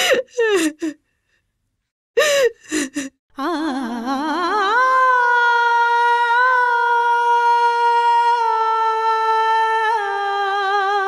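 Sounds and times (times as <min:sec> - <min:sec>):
woman sobbing and crying: 0:00.0 - 0:01.0, 0:02.2 - 0:04.2.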